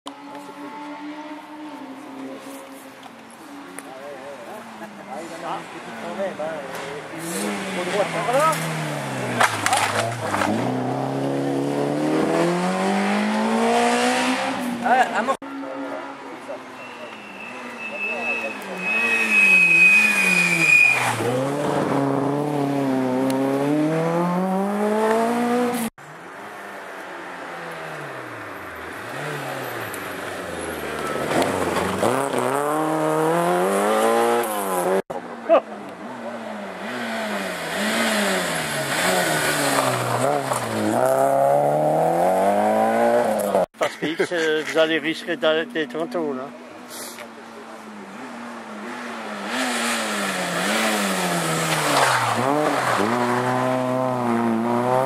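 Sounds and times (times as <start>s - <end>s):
rally car engines revving: 0.1s - 26.6s, 27.3s - 55.0s
high squeal: 16.6s - 21.2s.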